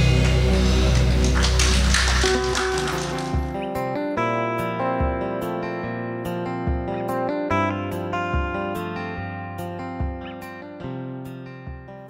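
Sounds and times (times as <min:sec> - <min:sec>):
quiet guitar music: 0:02.8 - 0:12.0.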